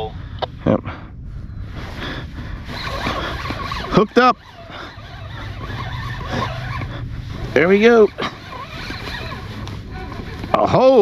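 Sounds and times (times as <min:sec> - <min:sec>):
steady low hum: 0:00.0 - 0:11.0
water noise: 0:00.0 - 0:11.0
wind: 0:00.0 - 0:11.0
fishing reel cranking: 0:02.6 - 0:11.0.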